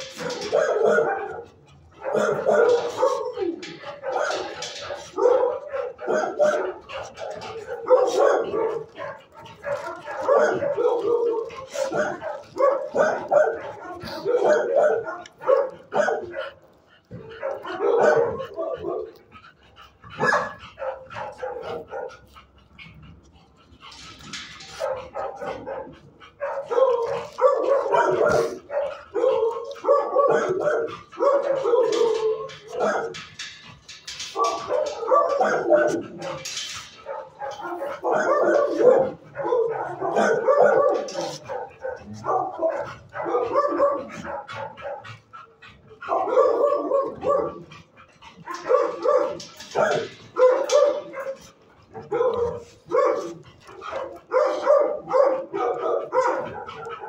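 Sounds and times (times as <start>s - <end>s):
puppy barking and yipping: 0.0s - 16.6s, 20.2s - 22.3s, 34.4s - 45.1s.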